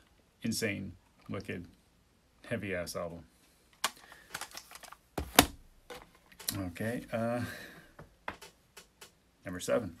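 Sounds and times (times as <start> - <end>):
plastic cases clicking and clattering: 3.8 - 6.6.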